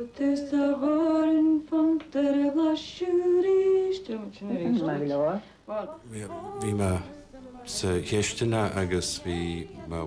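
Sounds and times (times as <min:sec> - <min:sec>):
woman talking: 0:04.3 - 0:06.0.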